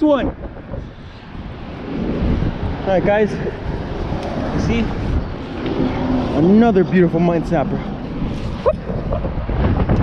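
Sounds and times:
road traffic rumble: 0:00.0 - 0:10.0
wind buffeting microphone: 0:00.0 - 0:10.0.

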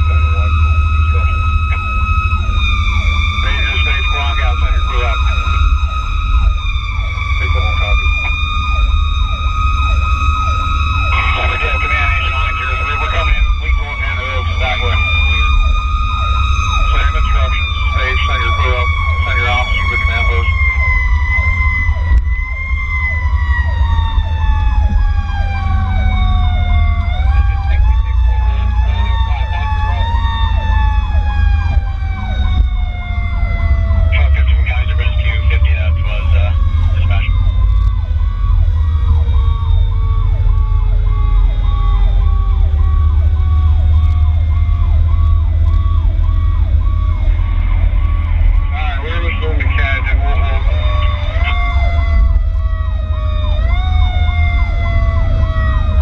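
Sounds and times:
fast pulsing siren: 0:00.0 - 0:56.0
heavy engine rumble: 0:00.0 - 0:56.0
siren wailing: 0:00.0 - 0:56.0.

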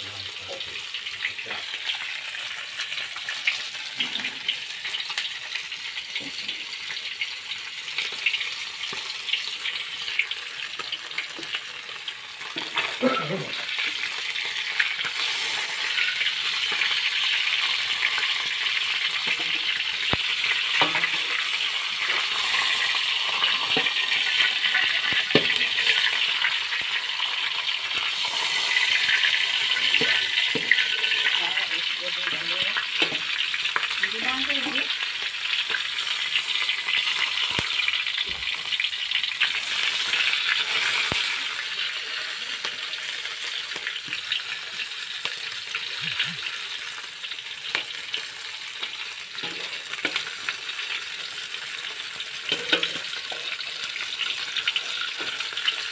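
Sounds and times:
fish sizzling in hot oil: 0:00.0 - 0:55.9
metal spatula scraping wok: 0:20.8 - 0:26.2, 0:52.5 - 0:53.4.

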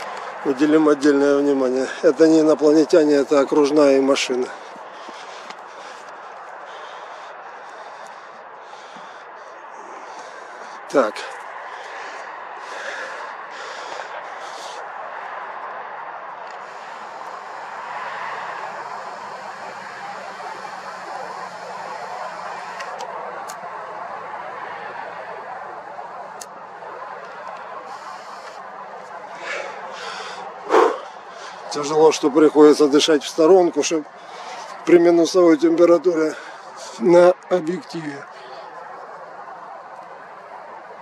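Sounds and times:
breaths close to microphone: 0:00.0 - 0:00.9, 0:03.8 - 0:24.3, 0:25.0 - 0:32.0, 0:33.5 - 0:34.9, 0:36.2 - 0:37.5, 0:38.2 - 0:41.0
distant road traffic hum: 0:00.0 - 0:41.0.

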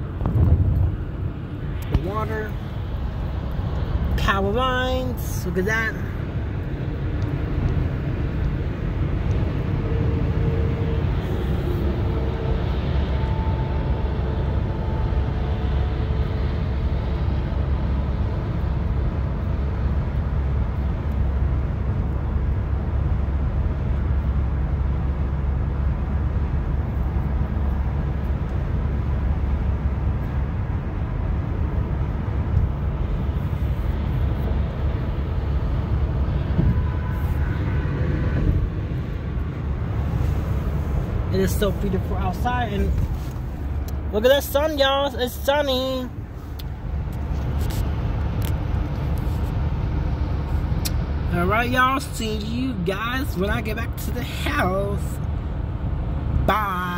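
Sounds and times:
car road noise rumble: 0:00.0 - 0:56.9.

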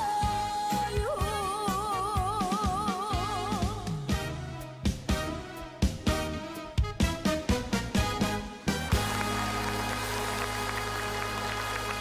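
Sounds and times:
live band playing trot song: 0:00.1 - 0:12.0
audience clapping: 0:08.7 - 0:12.0.

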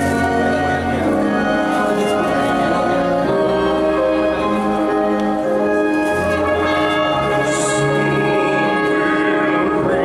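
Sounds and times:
wind orchestra playing chords: 0:00.0 - 0:10.0.

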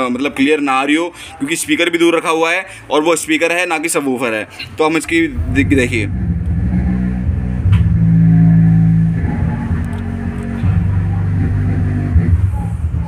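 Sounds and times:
low bass notes of a song: 0:05.1 - 0:13.0.

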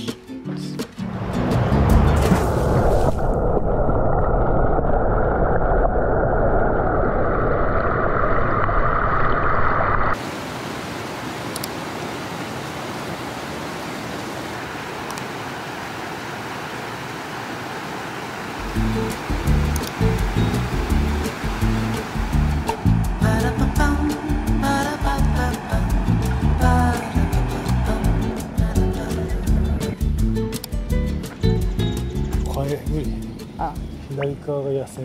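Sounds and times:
background music with a beat: 0:00.0 - 0:02.3, 0:18.6 - 0:34.0
muffled underwater river rush: 0:01.1 - 0:28.8.

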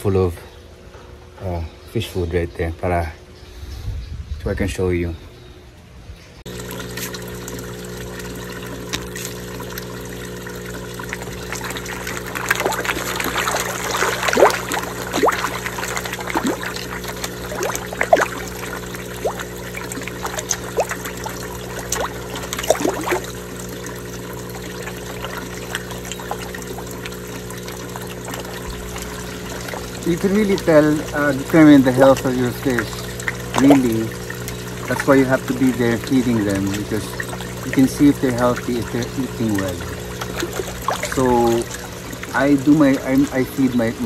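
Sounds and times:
low even hum: 0:00.0 - 0:44.0
fish splashing at water surface: 0:06.5 - 0:44.0
trickle of pond water: 0:06.5 - 0:44.0.

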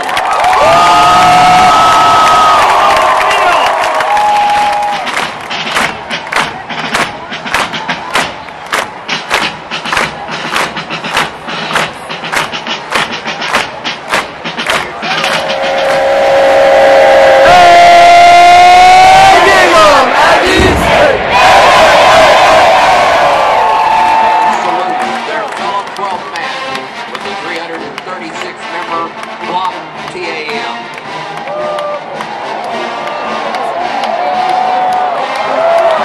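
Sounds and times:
crowd yelling: 0:00.0 - 0:09.1, 0:14.9 - 0:25.6, 0:31.4 - 0:36.0
crowd clapping in unison: 0:00.0 - 0:16.7, 0:17.4 - 0:36.0.

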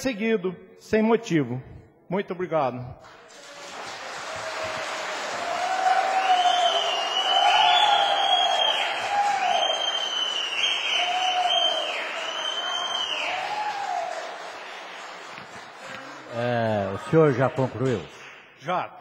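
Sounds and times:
audience applauding and cheering: 0:03.0 - 0:18.6.

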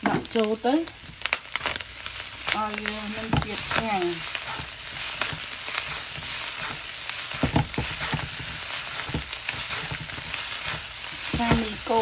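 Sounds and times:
noodles sizzling in a pan: 0:00.0 - 0:12.0.

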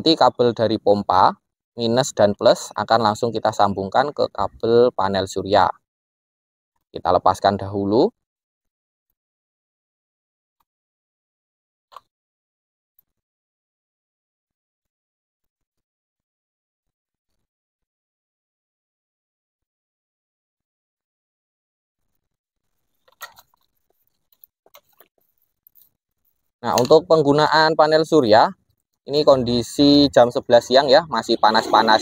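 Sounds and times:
hands handling a hose and wires: 0:22.1 - 0:27.0.

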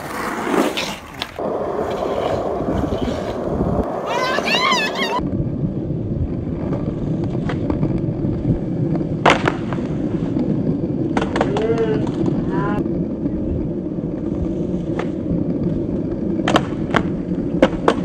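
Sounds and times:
skateboard wheels rolling on pavement: 0:00.0 - 0:18.0
skateboard clacking on ground: 0:06.5 - 0:13.5, 0:14.7 - 0:18.0.

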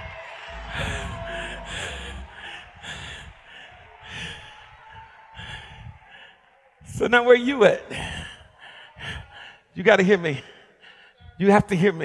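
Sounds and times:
man breathing hard: 0:00.0 - 0:07.0, 0:07.9 - 0:09.8, 0:10.4 - 0:11.4.

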